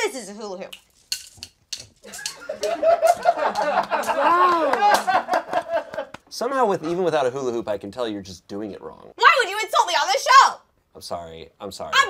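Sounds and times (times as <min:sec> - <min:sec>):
people laughing together: 0:02.0 - 0:06.2.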